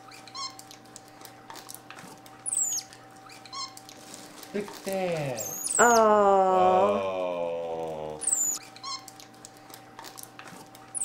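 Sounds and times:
monkeys squeaking: 0.0s - 0.7s, 2.4s - 3.9s, 5.4s - 6.1s, 8.2s - 9.2s
monkey warbling trill: 2.5s - 2.8s, 5.3s - 9.1s
plastic bag rustling: 3.9s - 5.4s.

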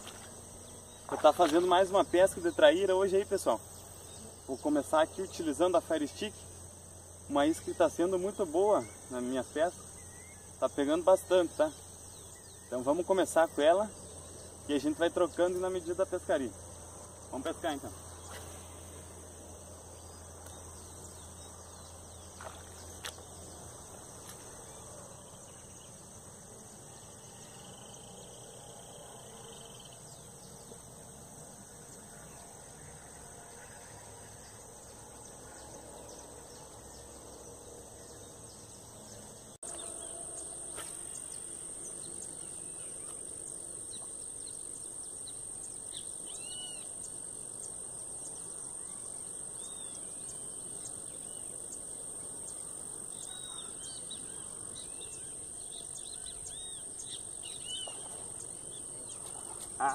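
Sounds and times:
birds chirping: 0.0s - 26.2s, 34.4s - 59.9s
insect chorus: 0.0s - 59.9s.

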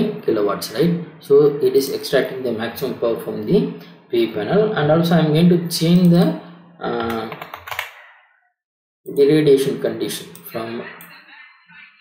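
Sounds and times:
person speaking: 0.0s - 8.2s, 9.1s - 12.0s
keyboard keys tapping: 7.0s - 8.0s.

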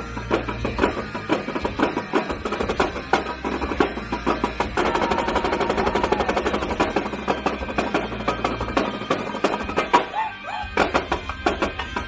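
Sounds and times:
marching drums rolling: 0.0s - 10.1s.

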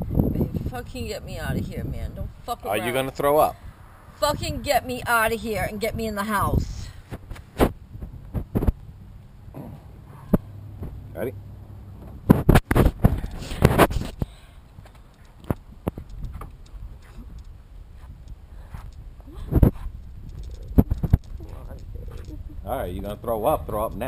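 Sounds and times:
steady low rumble: 0.0s - 24.0s
rustling: 12.0s - 22.6s.

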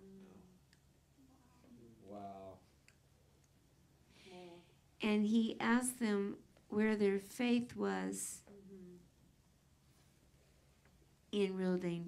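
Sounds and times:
soft murmur of a voice: 0.0s - 2.7s, 8.2s - 9.2s.

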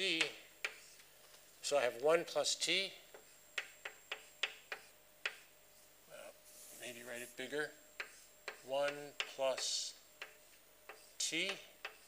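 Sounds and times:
chalk tapping on blackboard: 0.1s - 1.1s, 3.0s - 5.9s, 6.5s - 12.0s.

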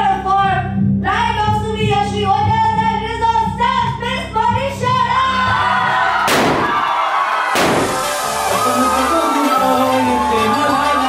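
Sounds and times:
background music: 0.0s - 11.0s
confetti cannon bang and hiss: 6.3s - 6.9s, 7.5s - 8.6s.

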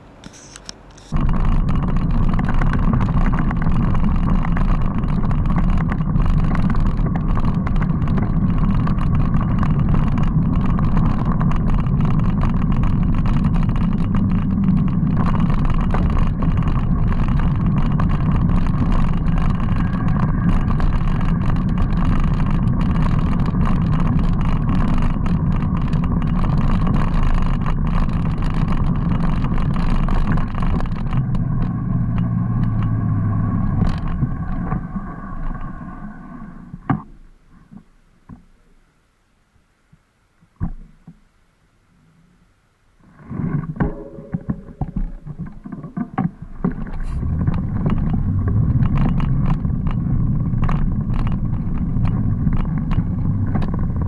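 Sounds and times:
bicycle tyres rolling on gravel: 1.0s - 36.9s, 45.1s - 54.0s
wind rushing over microphone: 1.1s - 36.9s, 43.2s - 54.0s.

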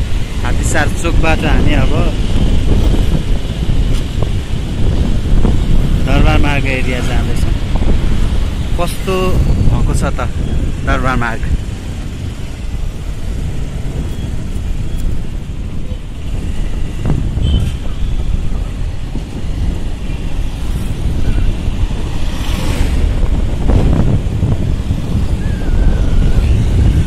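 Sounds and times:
road and traffic noise: 0.0s - 27.0s
wind buffeting microphone: 0.0s - 27.0s.

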